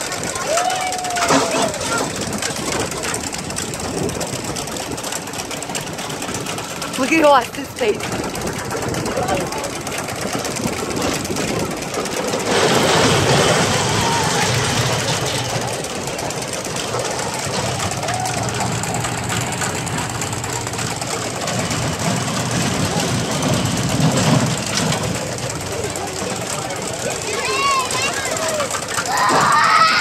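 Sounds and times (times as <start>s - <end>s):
roller coaster rattling on track: 0.0s - 30.0s.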